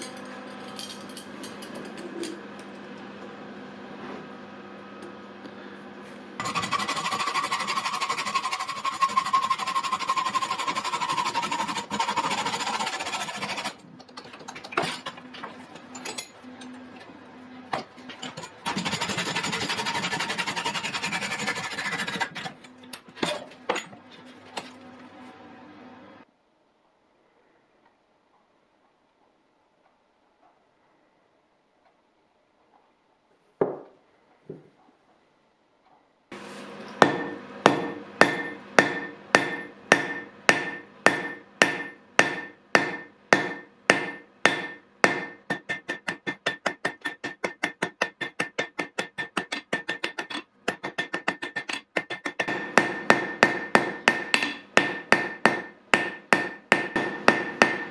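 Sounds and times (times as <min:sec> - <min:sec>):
metal wire rasping: 0:06.4 - 0:15.3, 0:18.0 - 0:23.9.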